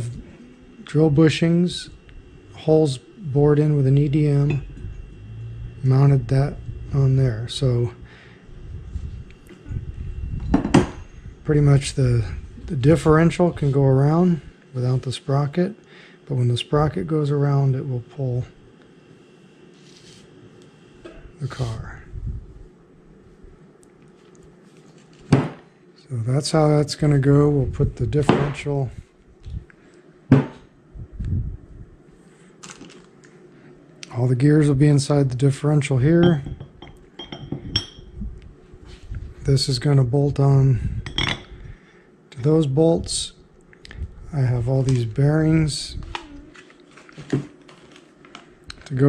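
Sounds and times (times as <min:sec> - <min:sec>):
metal parts clinking on bench: 0:41.1 - 0:41.5.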